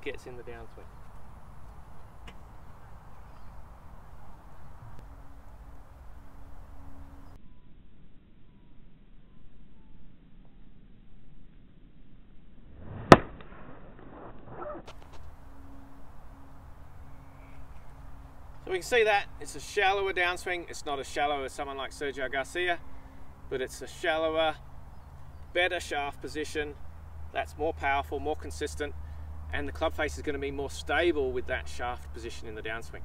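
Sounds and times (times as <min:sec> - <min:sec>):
outdoor background noise: 0:00.0 - 0:33.0
golf club hitting ball: 0:12.9 - 0:13.6.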